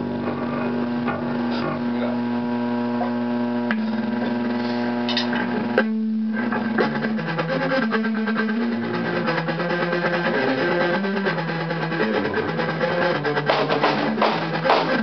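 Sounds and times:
amp hum: 0:00.0 - 0:15.0
electric guitar noodling: 0:00.0 - 0:15.0.

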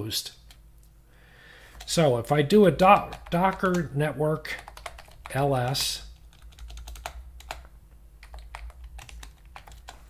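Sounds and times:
computer keyboard typing: 0:02.8 - 0:03.9, 0:04.5 - 0:10.0.

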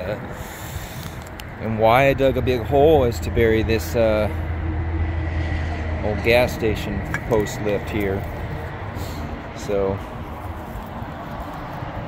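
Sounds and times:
low rumbling outdoor noise: 0:00.0 - 0:12.0.

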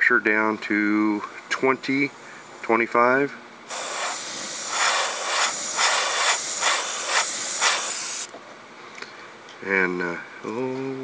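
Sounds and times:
airbrush hiss of compressed air: 0:01.2 - 0:02.9, 0:03.7 - 0:08.3.

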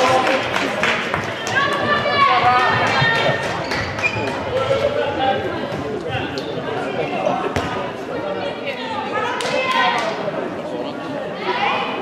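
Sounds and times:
ball bouncing on court floor: 0:07.6 - 0:07.8.

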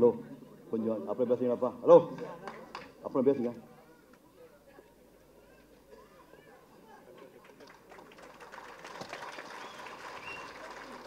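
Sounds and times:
audience applause: 0:07.3 - 0:11.0.

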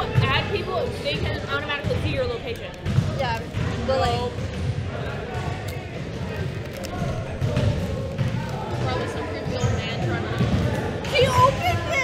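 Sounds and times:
basketballs bouncing on wooden floor: 0:00.0 - 0:06.4, 0:07.0 - 0:12.0
voices chattering: 0:00.0 - 0:12.0.

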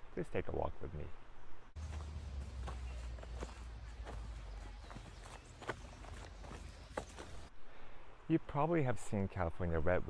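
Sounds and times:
footsteps on dirt trail: 0:01.8 - 0:07.5.

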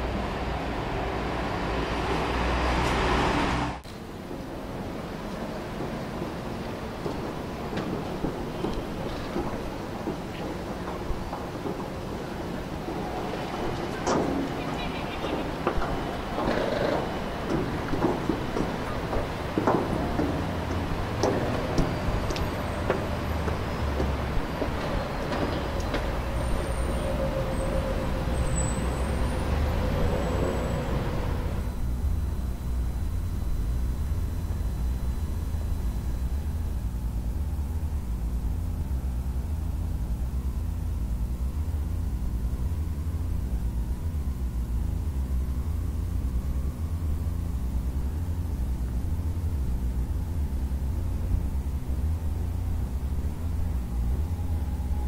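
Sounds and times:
city or rail background noise: 0:00.0 - 0:55.0
steady hum: 0:30.6 - 0:55.0.

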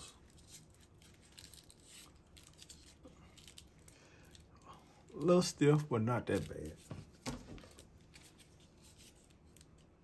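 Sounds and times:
cables rustling and clicking: 0:00.0 - 0:10.0.

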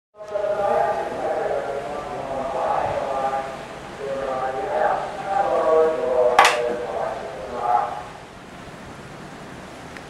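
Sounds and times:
many overlapping voices: 0:00.2 - 0:08.2.

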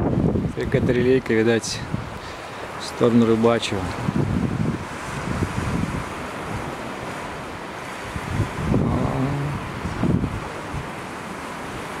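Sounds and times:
sea surf: 0:00.0 - 0:12.0
wind buffeting microphone: 0:00.0 - 0:12.0.

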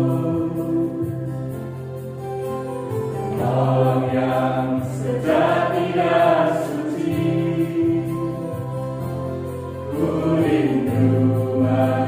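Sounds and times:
vocal group singing in harmony: 0:00.0 - 0:01.8, 0:03.3 - 0:12.0
electronic keyboard chords: 0:00.0 - 0:12.0.

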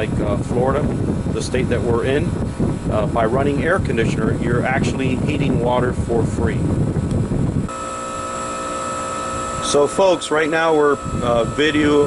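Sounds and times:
rushing wind-like noise: 0:00.0 - 0:07.8, 0:10.8 - 0:12.0
air conditioner hum: 0:00.0 - 0:12.0.

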